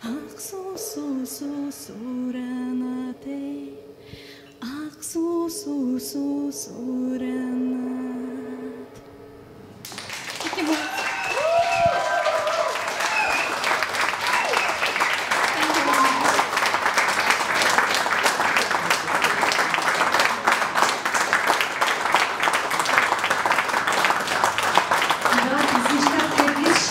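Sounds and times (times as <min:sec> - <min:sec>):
audience clapping: 0:09.8 - 0:26.9
person cheering: 0:10.4 - 0:16.6
voices: 0:25.3 - 0:26.9.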